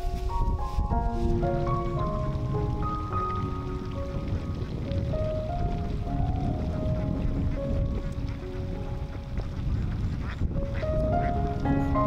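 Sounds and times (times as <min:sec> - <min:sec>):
background music: 0:00.0 - 0:09.7, 0:10.4 - 0:12.0
low rumble: 0:00.0 - 0:12.0
ducks quacking: 0:01.0 - 0:12.0.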